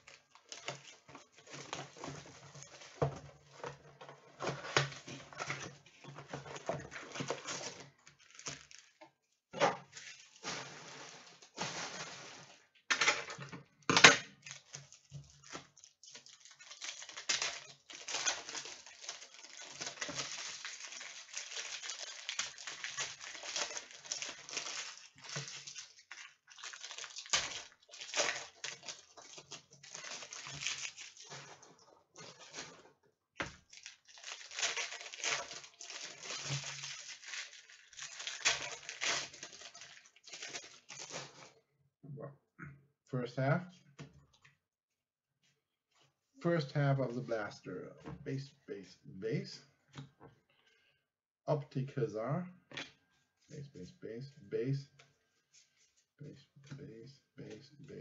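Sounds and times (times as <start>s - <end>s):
card pack wrappers crinkling: 0.0s - 9.0s, 9.8s - 13.3s, 13.9s - 32.8s, 33.4s - 41.5s.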